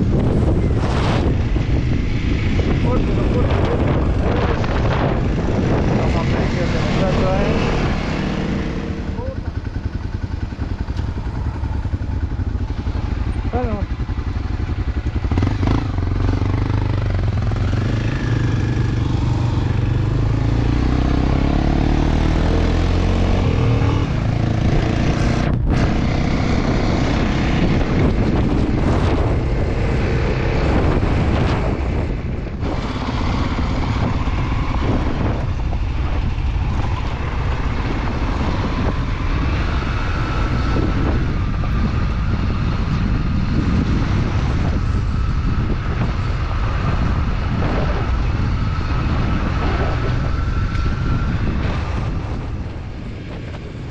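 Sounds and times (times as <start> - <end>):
motorcycle engine under load: 0.0 - 29.9.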